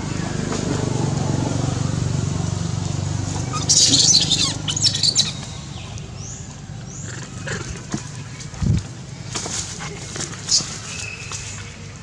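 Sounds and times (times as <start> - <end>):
baby monkey squealing: 3.4 - 5.4.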